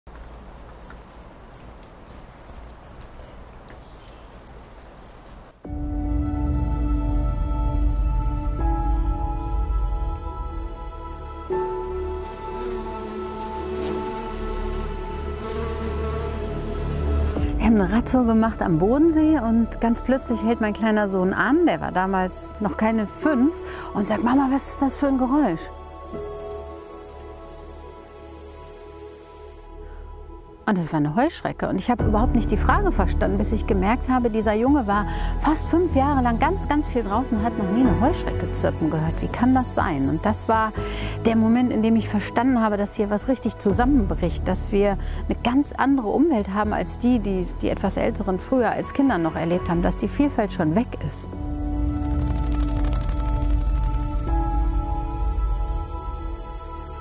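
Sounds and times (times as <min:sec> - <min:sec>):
bird chirping: 0:00.1 - 0:05.5, 0:25.8 - 0:29.8, 0:37.5 - 0:40.8, 0:51.5 - 0:57.0
soft music with held tones: 0:05.6 - 0:57.0.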